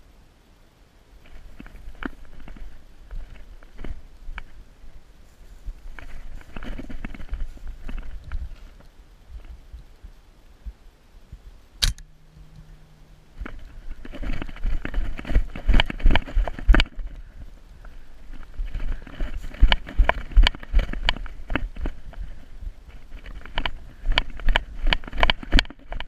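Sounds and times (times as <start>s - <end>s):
gear rustling: 1.2s - 9.8s, 11.8s - 26.0s
footsteps in dry grass: 1.2s - 11.5s, 12.3s - 26.0s
low microphone rumble: 1.3s - 25.9s
sharp click: 11.8s - 12.7s.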